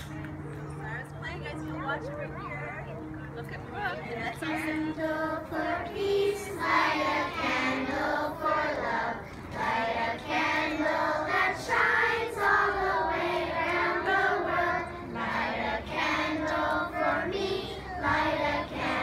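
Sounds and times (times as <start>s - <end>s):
children singing in unison: 4.7s - 19.0s.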